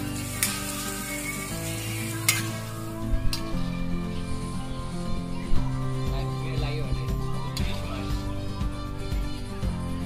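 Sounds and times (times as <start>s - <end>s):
metal spatula scraping pan: 0.0s - 3.4s
noodles sizzling in wok: 0.0s - 3.8s.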